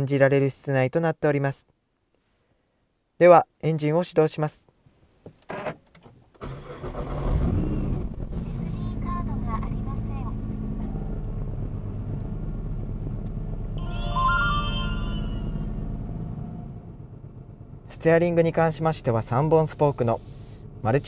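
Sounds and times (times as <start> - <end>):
car engine starting and idling: 5.5 - 21.0.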